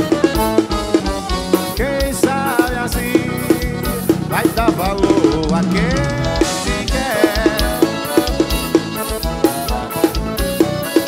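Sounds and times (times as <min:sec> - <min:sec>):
accordion chords: 0:00.0 - 0:11.0
drum kit beat: 0:00.0 - 0:11.0.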